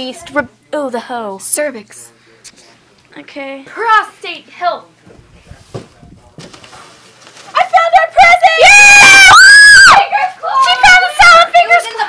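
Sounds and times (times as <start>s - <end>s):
children shrieking: 8.6s - 10.2s.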